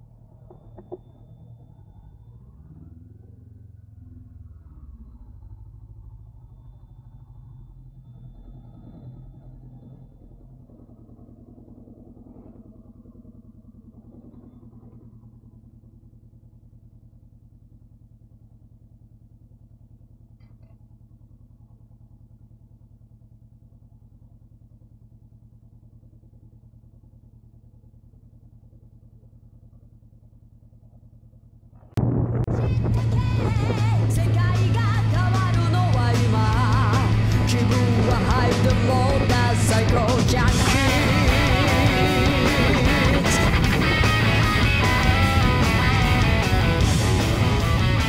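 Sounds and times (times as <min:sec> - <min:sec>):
motorcycle engine idling: 0:00.0 - 0:04.5, 0:05.2 - 0:48.0.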